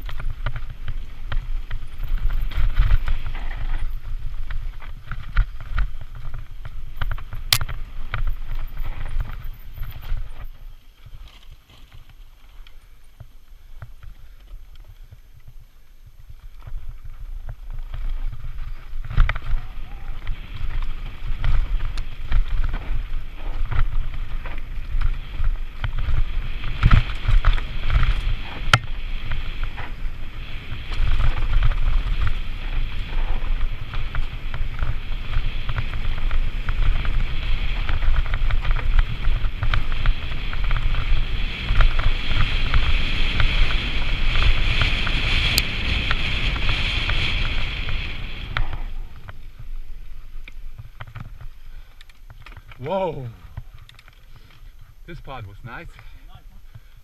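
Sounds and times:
bike knocking and rattling: 0.0 - 55.0
bike tyres rolling on dirt: 0.0 - 57.0
wind buffeting microphone: 14.0 - 57.0.

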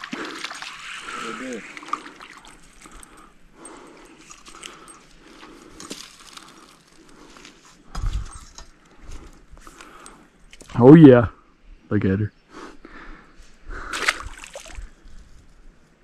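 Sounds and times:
light water splashing: 0.0 - 3.3, 13.9 - 15.0.

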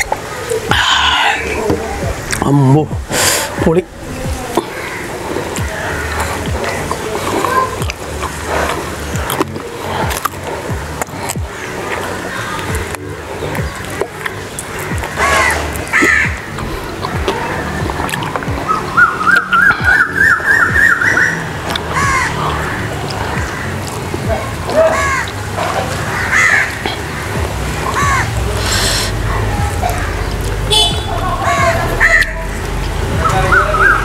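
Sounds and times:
background music: 0.0 - 34.0
birds calling: 0.0 - 34.0.

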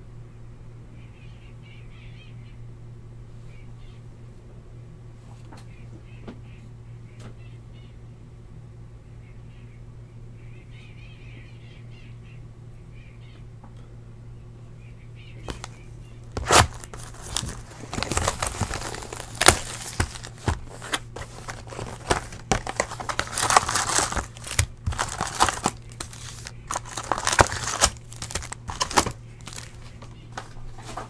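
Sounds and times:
plastic shrink wrap crinkling: 15.4 - 30.1.

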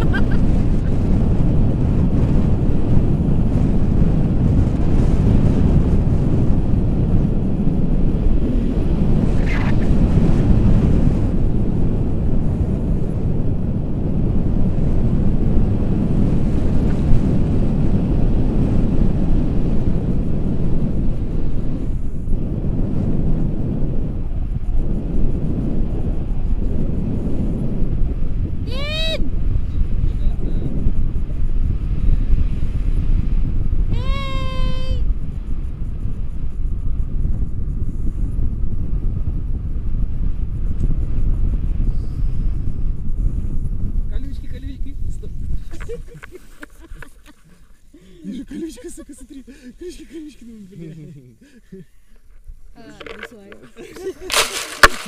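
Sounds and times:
wind buffeting microphone: 0.0 - 55.0
high-pitched cry sliding downward: 28.7 - 29.2, 33.9 - 35.0.

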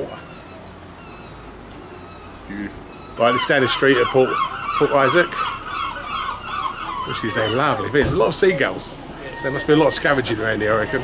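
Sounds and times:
distant seagulls calling: 0.0 - 11.0
low outdoor background noise: 0.0 - 11.0.

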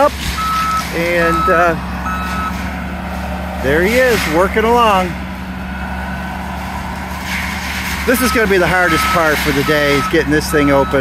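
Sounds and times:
mulcher engine droning: 0.0 - 11.0.

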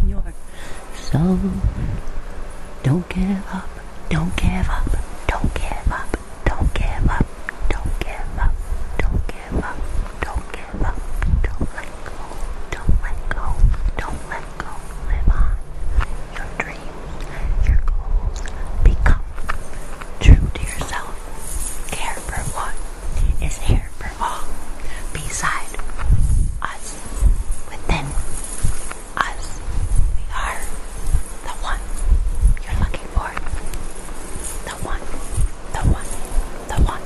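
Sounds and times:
woman whispering: 0.0 - 1.9, 2.8 - 33.8, 34.4 - 37.0
soft low thumps: 1.1 - 19.6, 20.2 - 37.0.

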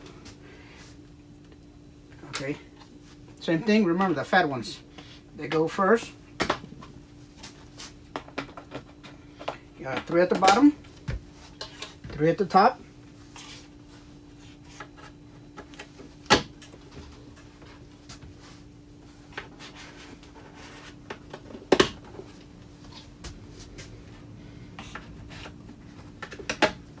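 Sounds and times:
faint steady hum: 0.0 - 27.0.

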